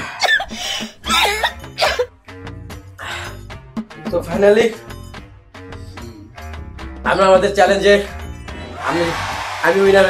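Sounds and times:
man coughing: 0.0 - 2.1
background music: 0.0 - 10.0.

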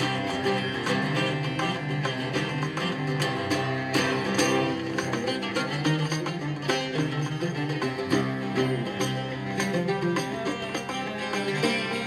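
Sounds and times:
acoustic ensemble music: 0.0 - 12.0
oud plucked with a plectrum: 0.0 - 12.0.

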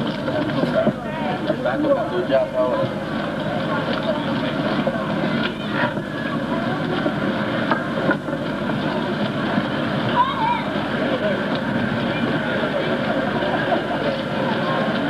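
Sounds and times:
city street noise: 0.0 - 15.0
passers-by's voices: 0.0 - 15.0.

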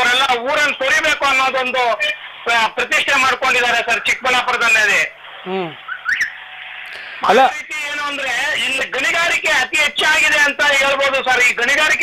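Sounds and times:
high rising chirp: 5.8 - 6.5.

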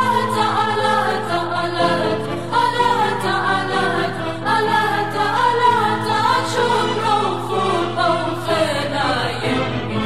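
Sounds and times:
voices singing over low drone: 0.0 - 10.0.

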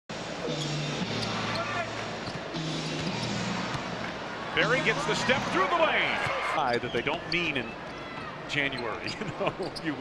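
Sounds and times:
crowd noise: 0.1 - 10.0.

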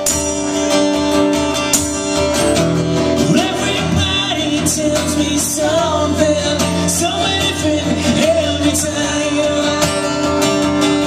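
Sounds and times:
acoustic guitar strumming: 0.0 - 11.0
man singing: 3.2 - 11.0.

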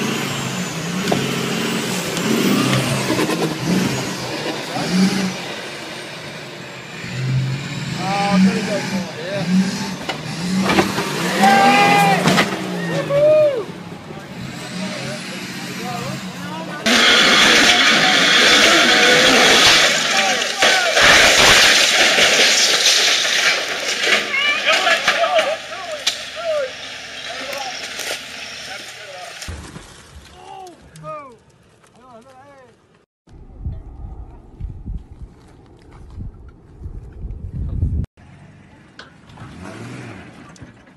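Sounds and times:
off-road vehicle noise: 0.0 - 40.9
people exclaiming: 11.2 - 13.8, 17.2 - 21.3, 24.2 - 26.7.

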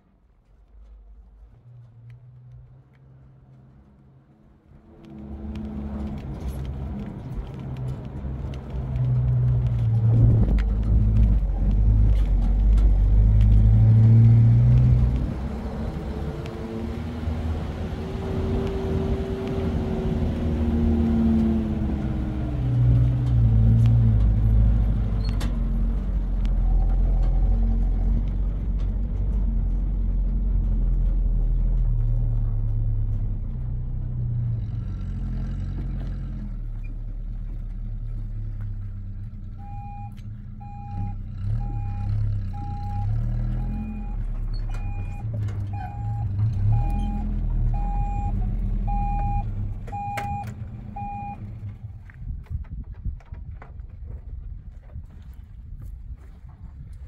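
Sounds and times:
truck engine running: 3.5 - 52.4
electronic warning beep: 39.6 - 44.2, 44.8 - 51.4.

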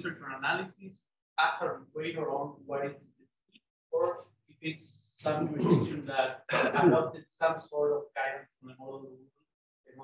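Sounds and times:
person talking: 0.0 - 0.8, 5.2 - 9.0.

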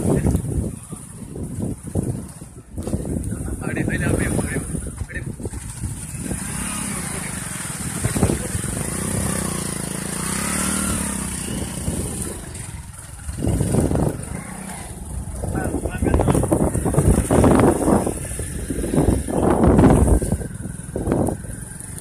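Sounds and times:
wind on microphone: 0.0 - 22.0
small engine running: 4.1 - 22.0.

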